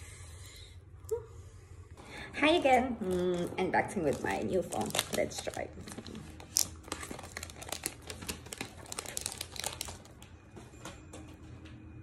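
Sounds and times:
packaging crinkling: 3.0 - 10.3.

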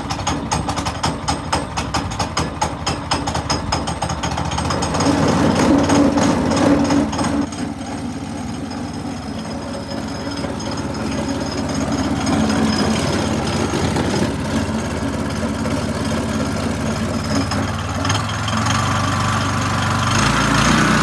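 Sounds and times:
petrol engine idling: 0.0 - 21.0.

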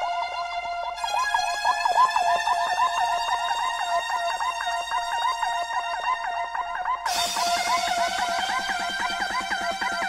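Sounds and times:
trance music: 0.0 - 10.0
swooping siren-like synthesizer: 0.2 - 10.0.

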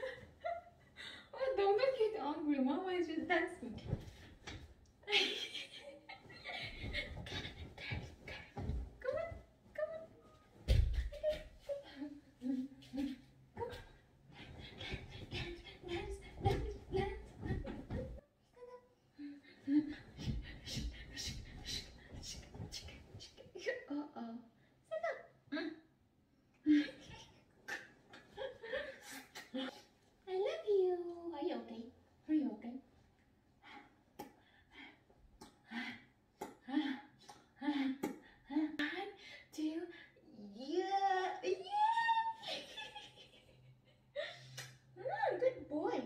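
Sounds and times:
woman cooing: 40.5 - 42.5.

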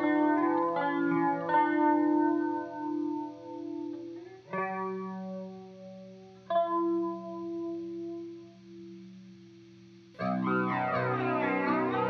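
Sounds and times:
electric guitar chords with chorus: 0.0 - 12.0.

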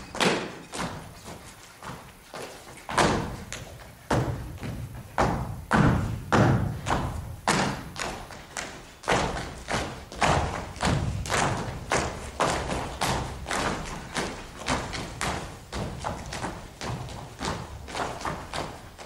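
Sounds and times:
boots stamping on stage floor: 0.0 - 19.0.

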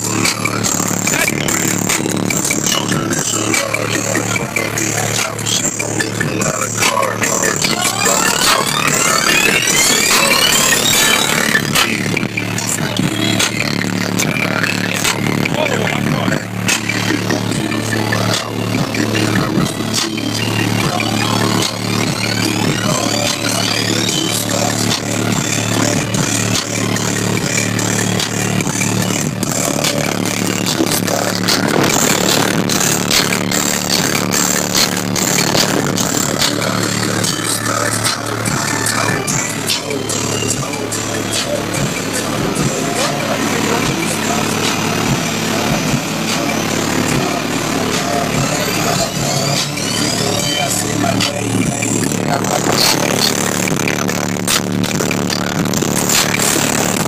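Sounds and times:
bass-heavy electronic music: 0.0 - 57.0
rising sweep: 0.0 - 57.0.

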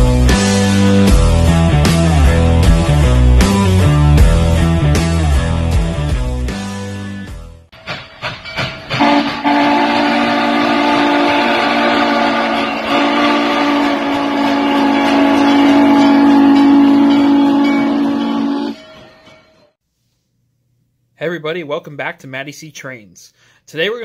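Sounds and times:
steam locomotive whistle: 9.0 - 19.4.

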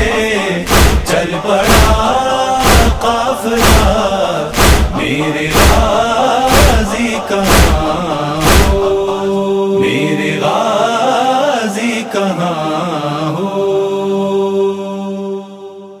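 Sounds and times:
voices chanting a lament: 0.0 - 16.0
deep drum thump: 0.7 - 1.1, 1.7 - 6.9, 7.5 - 8.9.

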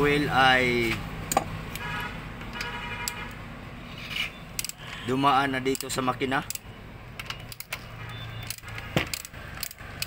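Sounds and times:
metal tool clicks: 4.5 - 4.8, 5.6 - 10.0.

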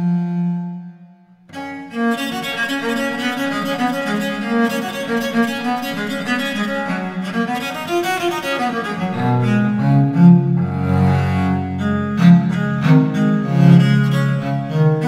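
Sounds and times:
solo viola da gamba playing: 0.0 - 15.0.

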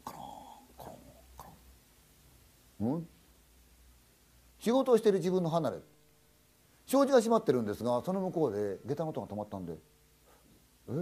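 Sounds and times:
faint low hum: 0.0 - 11.0
man talking: 2.8 - 3.2, 6.9 - 9.9.

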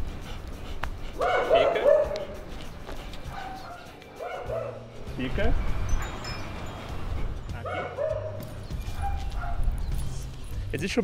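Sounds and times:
dog high-pitched calls: 7.7 - 9.8.

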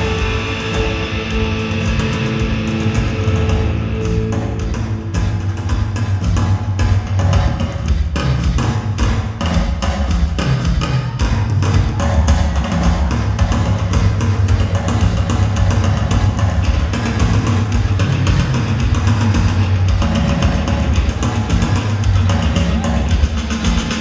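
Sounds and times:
drums keeping a steady beat: 0.0 - 24.0
heavy bass line: 0.0 - 24.0
synthesizers: 0.0 - 24.0.

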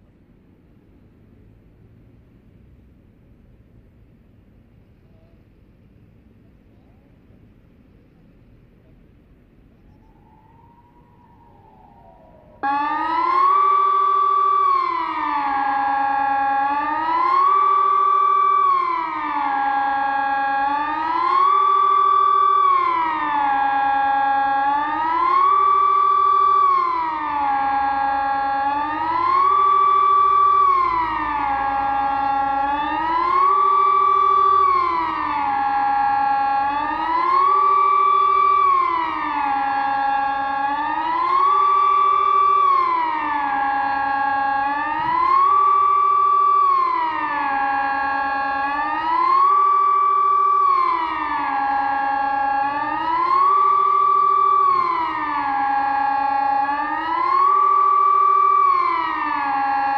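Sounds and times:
rising and falling electronic siren: 9.7 - 59.9.

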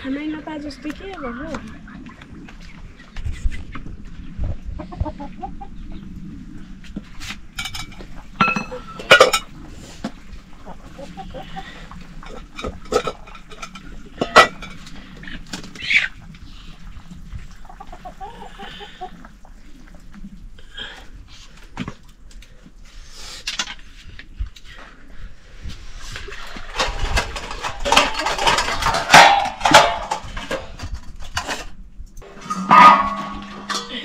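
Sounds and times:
chickens clucking: 0.6 - 20.4, 32.3 - 34.0.

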